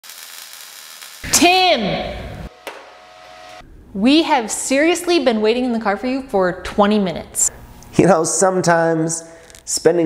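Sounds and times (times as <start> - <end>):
welding arc sizzling: 0.0 - 4.4
person calling out loudly: 1.2 - 2.2
steady hum: 1.2 - 8.6.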